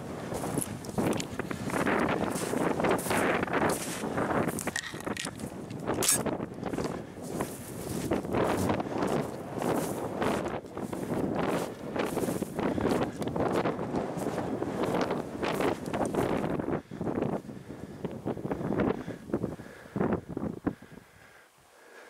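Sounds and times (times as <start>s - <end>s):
footsteps through snow and grass: 0.0s - 17.3s
wind buffeting microphone: 0.0s - 21.1s.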